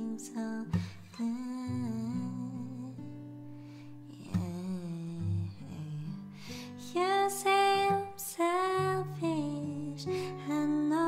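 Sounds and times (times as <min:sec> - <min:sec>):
acoustic guitar: 0:00.0 - 0:11.0
woman singing softly: 0:00.0 - 0:11.0.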